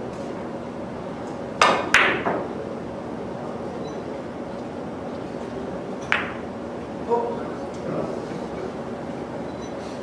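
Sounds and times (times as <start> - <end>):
room hum: 0.0 - 10.0
billiard balls clacking: 1.6 - 2.5, 6.0 - 6.5.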